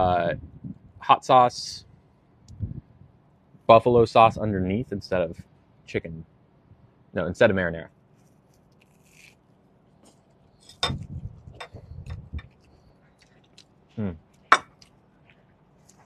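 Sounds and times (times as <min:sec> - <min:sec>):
close chewing: 0:11.0 - 0:13.8
person humming: 0:14.0 - 0:14.2.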